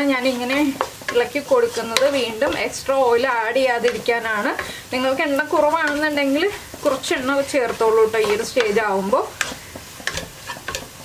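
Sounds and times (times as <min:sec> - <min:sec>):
faint sizzle of frying: 0:00.0 - 0:11.0
spatula scraping a pan: 0:00.0 - 0:11.0.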